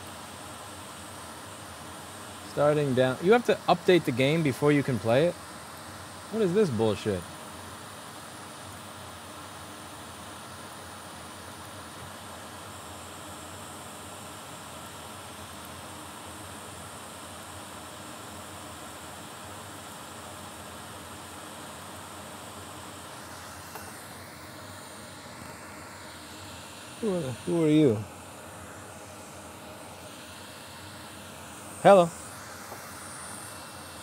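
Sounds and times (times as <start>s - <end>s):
steady background hiss: 0.0s - 34.0s.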